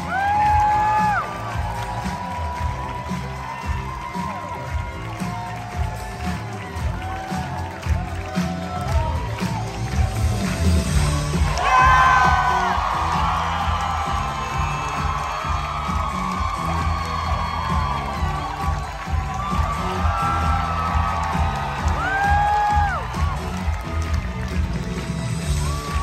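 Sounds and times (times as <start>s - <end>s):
high whoop: 0.0s - 10.1s, 11.5s - 23.8s
amplified pop music: 0.0s - 26.0s
audience cheering and whooping: 0.0s - 26.0s.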